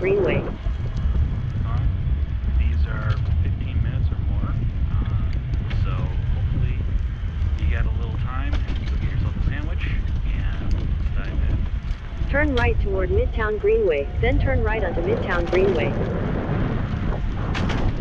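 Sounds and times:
faint speech: 0:00.0 - 0:00.6, 0:02.6 - 0:06.8, 0:07.6 - 0:11.6, 0:12.3 - 0:16.0
wind rumbling on microphone: 0:00.0 - 0:18.0.

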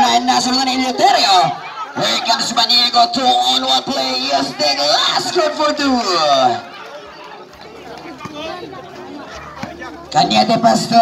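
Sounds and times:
man speaking: 0:00.0 - 0:06.7, 0:09.7 - 0:11.0
background chatter of voices: 0:00.0 - 0:11.0.

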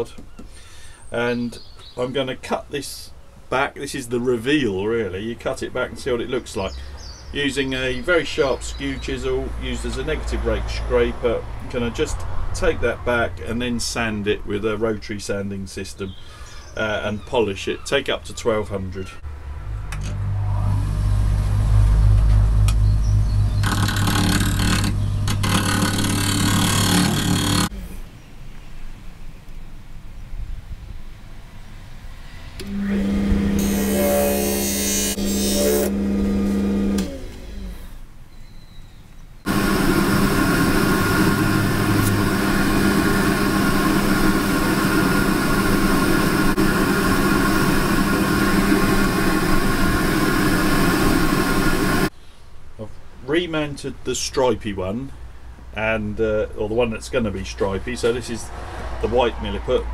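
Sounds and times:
lathe motor hum: 0:22.6 - 0:27.7, 0:32.6 - 0:37.9, 0:39.5 - 0:52.1
chisel scraping spinning wood: 0:23.6 - 0:27.7.

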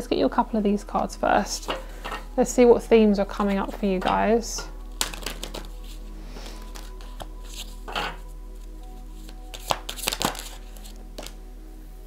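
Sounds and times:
soft background music: 0:00.0 - 0:12.0
cards shuffling: 0:04.9 - 0:07.8, 0:09.2 - 0:11.4.

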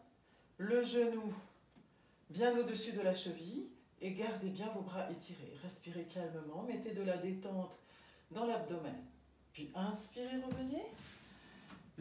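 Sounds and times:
woman speaking: 0:02.3 - 0:11.1.

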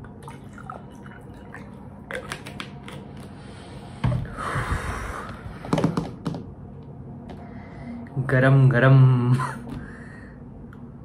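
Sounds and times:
water pouring into glass: 0:00.1 - 0:02.4.

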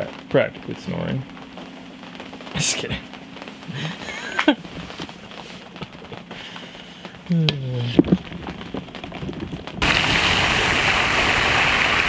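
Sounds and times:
rain on a tent roof: 0:00.0 - 0:12.0.

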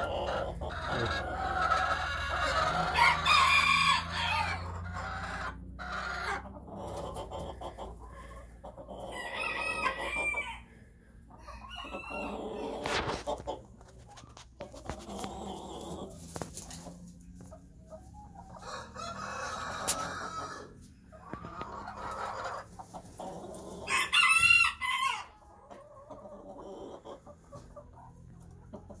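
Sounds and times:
chickens calling: 0:00.0 - 0:29.0
rooster crowing: 0:02.4 - 0:04.8, 0:09.1 - 0:10.6, 0:11.4 - 0:12.6, 0:18.6 - 0:20.7, 0:23.9 - 0:25.3.

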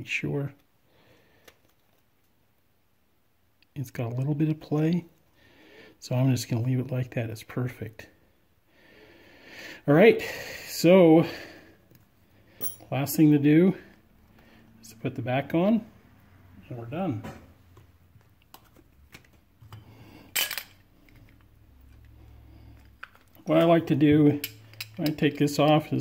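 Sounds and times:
person speaking: 0:14.8 - 0:16.0, 0:16.6 - 0:17.5, 0:23.3 - 0:26.0.

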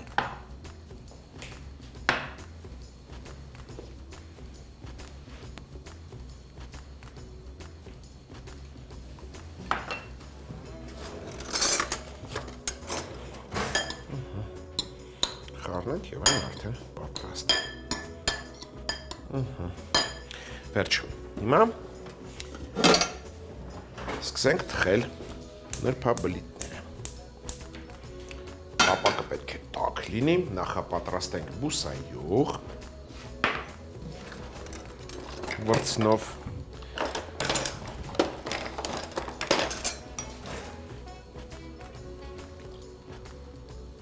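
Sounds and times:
background music: 0:00.0 - 0:44.0
utensils clinking on bowl and board: 0:09.7 - 0:10.2, 0:10.9 - 0:14.1, 0:17.4 - 0:19.2, 0:22.4 - 0:26.8, 0:33.4 - 0:40.7
spoon clinking glass bowl: 0:09.8 - 0:10.1, 0:16.2 - 0:16.6, 0:17.5 - 0:19.2, 0:19.9 - 0:20.3.

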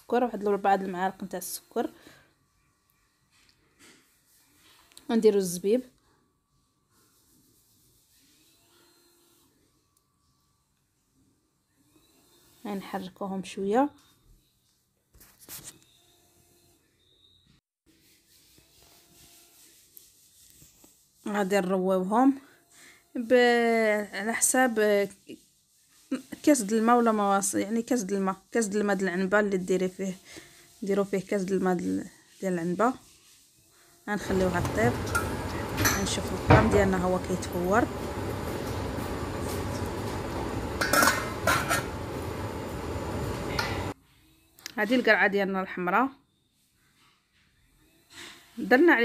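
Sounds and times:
low rumble of steaming pot: 0:34.2 - 0:44.0
glass lid clinking on metal pot: 0:40.8 - 0:41.9.

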